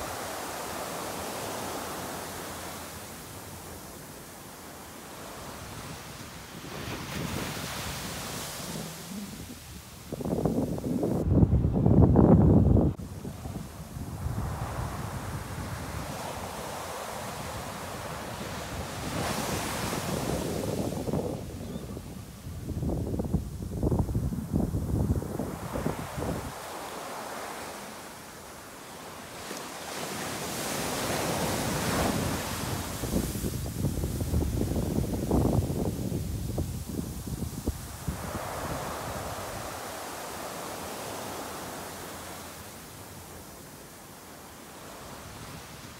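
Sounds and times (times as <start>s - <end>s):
surf washing on beach: 0.0s - 45.9s
wind gusting on microphone: 5.2s - 27.7s, 29.9s - 42.3s.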